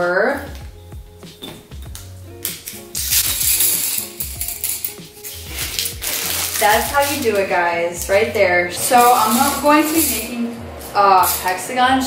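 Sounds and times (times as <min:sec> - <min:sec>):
background music: 0:00.0 - 0:12.0
wooden sticks rattling and clattering: 0:02.5 - 0:11.8.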